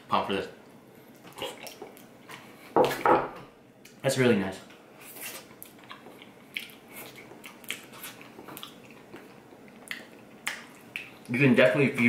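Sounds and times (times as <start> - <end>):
wet mouth eating sounds: 1.2 - 2.5, 5.0 - 11.3.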